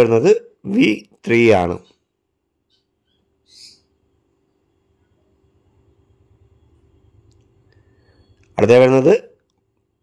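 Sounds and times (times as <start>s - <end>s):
faint steady hum: 0.0s - 10.0s
bird chirp: 1.6s - 8.9s.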